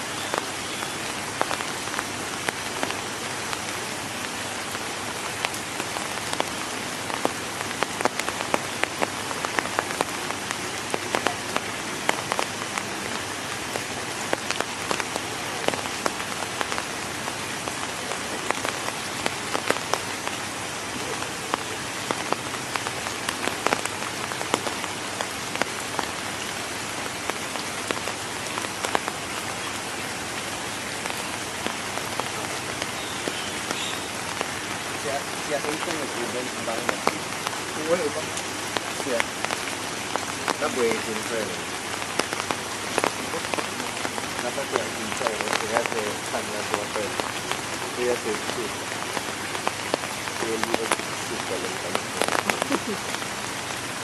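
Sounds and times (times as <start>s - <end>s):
rain falling on wet ground: 0.0s - 54.0s
raindrops pattering: 0.0s - 54.0s.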